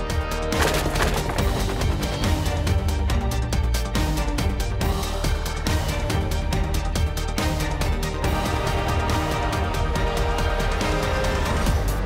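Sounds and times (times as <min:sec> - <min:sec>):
driving soundtrack music: 0:00.0 - 0:12.0.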